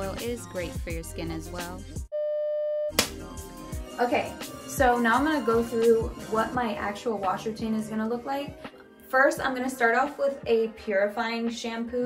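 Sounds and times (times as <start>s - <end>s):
lofi background music: 0.0s - 2.0s, 3.0s - 12.0s
electronic beep tone: 2.2s - 3.0s.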